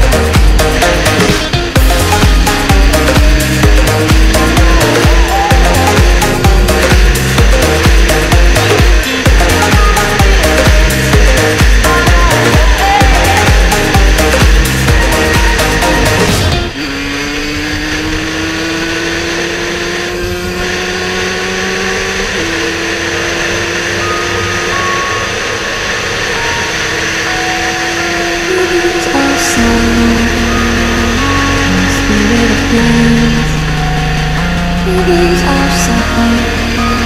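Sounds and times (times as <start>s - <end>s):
electronic dance music: 0.0s - 18.6s, 21.0s - 37.0s
motorcycle engine accelerating: 0.0s - 37.0s.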